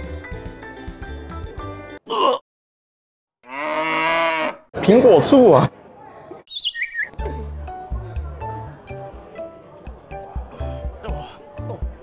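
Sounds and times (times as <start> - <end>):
high chirping sound effect: 6.5 - 7.1.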